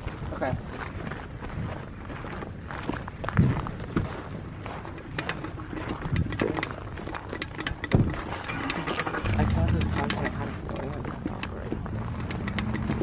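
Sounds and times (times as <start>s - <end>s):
footsteps crunching on gravel: 0.0s - 6.1s
low rumble: 9.1s - 13.0s.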